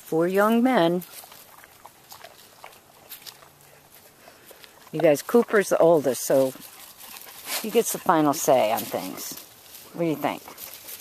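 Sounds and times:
paws crackling on dry leaves: 0.0s - 11.0s.

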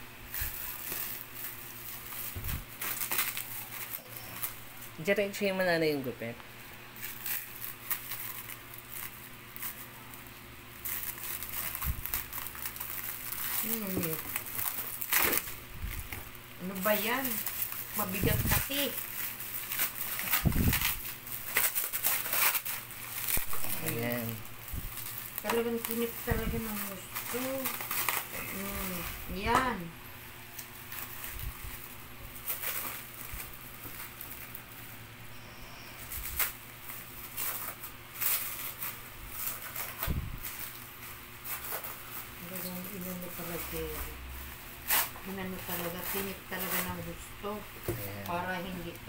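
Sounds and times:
plastic wrap crinkling: 0.1s - 35.1s, 36.0s - 49.0s.

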